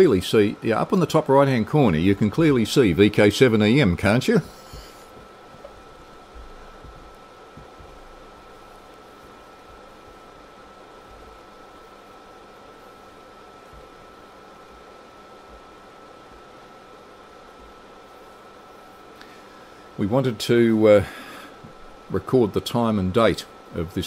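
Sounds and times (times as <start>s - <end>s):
background hiss: 0.0s - 24.0s
soft low bumps: 4.6s - 11.9s.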